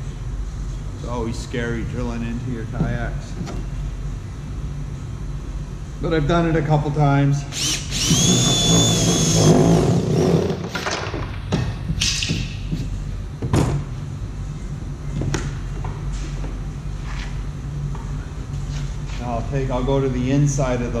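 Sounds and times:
steady low hum: 0.0s - 21.0s
cordless drill whining: 7.6s - 10.4s.

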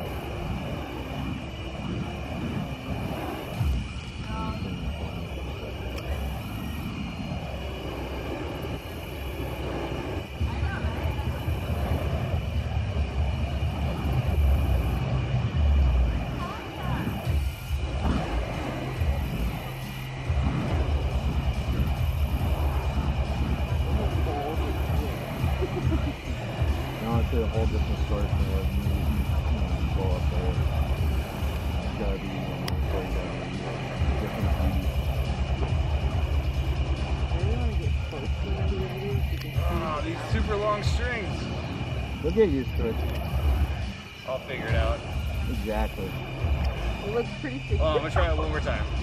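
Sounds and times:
fire poi whooshing: 0.0s - 49.0s.

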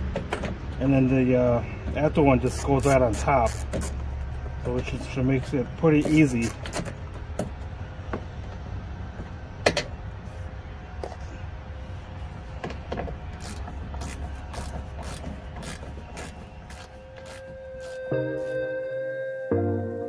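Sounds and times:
music: 17.3s - 20.0s.

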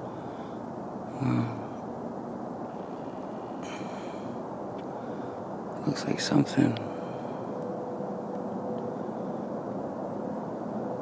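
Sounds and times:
faint steady hum: 0.0s - 11.0s
low background rumble: 0.0s - 11.0s.

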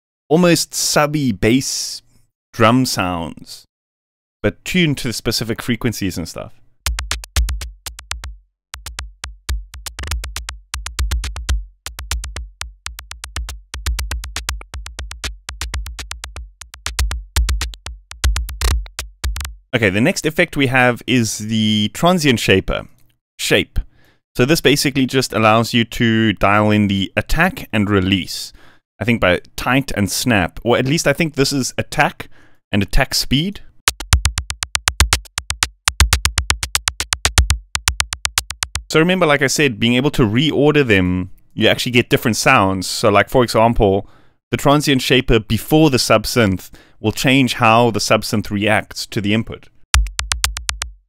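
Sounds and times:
electronic drum loop: 6.8s - 19.6s, 33.9s - 38.9s, 50.0s - 51.0s
sub-bass tone: 6.9s - 19.6s, 50.0s - 51.0s.

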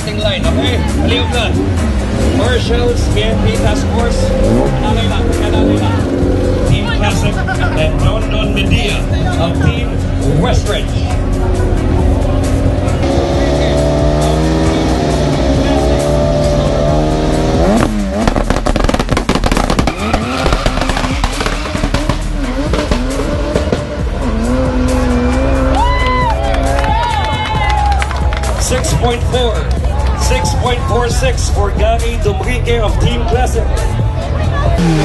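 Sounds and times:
race car engine revving: 0.0s - 35.0s.

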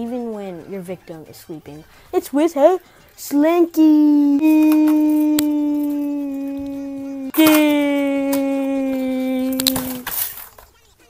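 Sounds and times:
boy's drawn-out yell: 4.2s - 10.1s.

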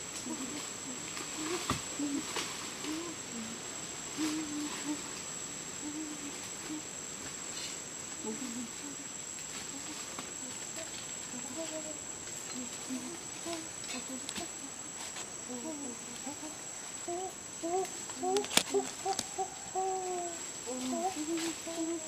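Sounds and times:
short low calls: 0.0s - 7.0s, 8.2s - 22.0s
high-pitched insect drone: 0.0s - 22.0s.

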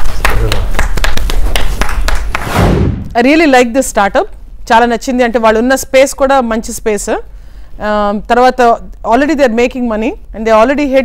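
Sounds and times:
sharp percussive hits: 0.3s - 3.2s.

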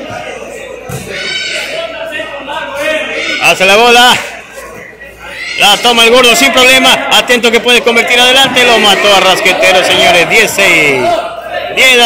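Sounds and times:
voices of players and onlookers: 0.0s - 12.0s.

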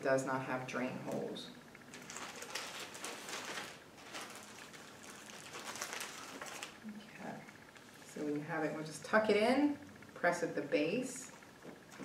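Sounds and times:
plastic bag crinkling: 1.9s - 6.9s.

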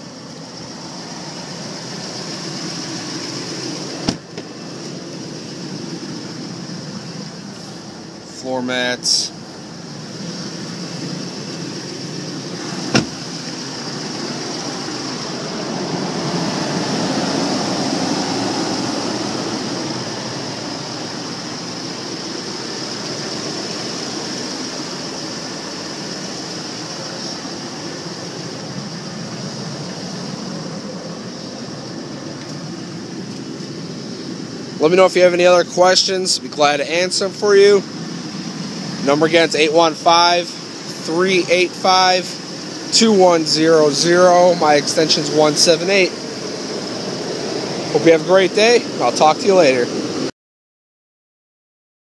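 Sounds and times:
pickup engine idling: 0.0s - 50.3s
sharp knock: 12.9s - 13.2s.

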